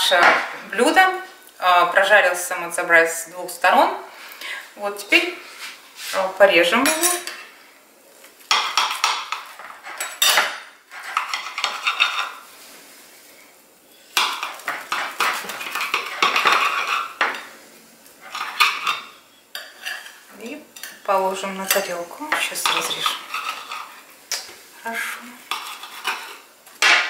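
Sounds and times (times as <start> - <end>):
knife sawing and scraping on plate: 9.6 - 12.4, 22.7 - 24.0, 25.5 - 26.4.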